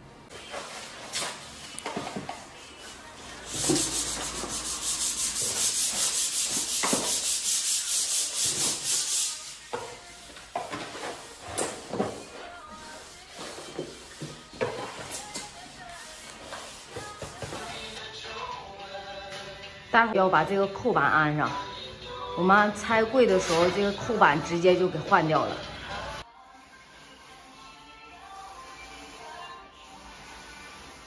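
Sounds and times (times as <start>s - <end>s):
hand sanding plaster wall: 2.1s - 18.0s, 26.6s - 31.0s.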